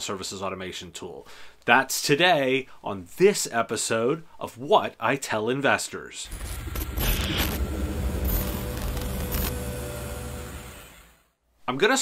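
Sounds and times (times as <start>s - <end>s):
deep noisy electronic swell: 6.3s - 11.1s.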